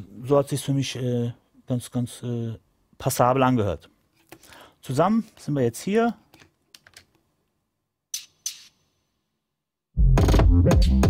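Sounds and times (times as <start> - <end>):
percussion hits: 8.2 - 8.9, 10.0 - 11.0
bass and kick drum with snares: 10.0 - 11.0
hip-hop drum beat: 10.0 - 11.0.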